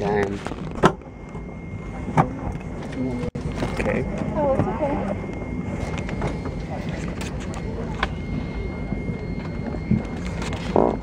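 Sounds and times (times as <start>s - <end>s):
airliner cabin hum: 0.0s - 11.0s
faint high whine: 0.0s - 11.0s.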